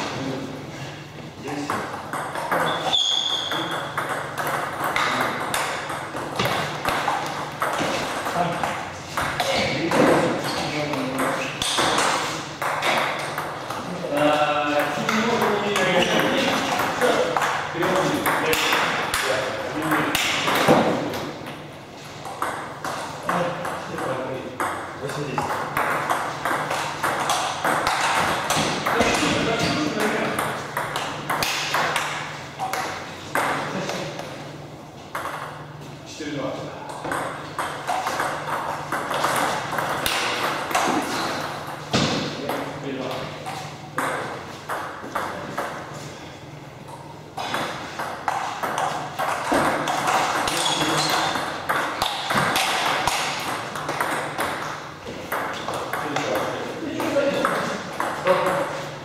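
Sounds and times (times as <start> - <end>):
people talking: 1.4 - 1.9, 8.2 - 11.7, 13.8 - 20.9, 23.2 - 25.6, 28.8 - 30.6, 33.4 - 34.3, 42.0 - 43.4, 50.4 - 51.5, 55.9 - 58.9
table tennis balls clicking: 1.5 - 34.4, 35.1 - 35.8, 36.8 - 45.9, 46.8 - 59.0.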